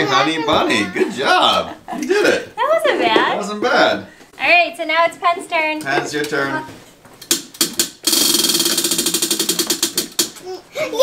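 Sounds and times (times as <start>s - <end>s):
child shouting: 0.0s - 1.0s
prize wheel clicker ticking: 7.6s - 10.3s.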